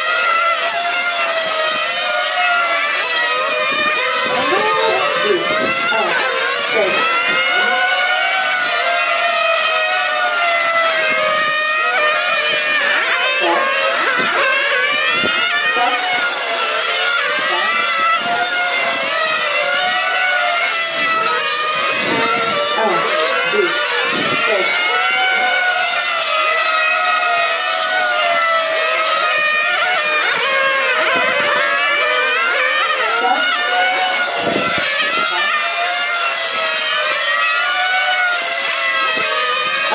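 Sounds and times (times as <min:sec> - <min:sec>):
rc car engines whining: 0:00.0 - 0:39.9.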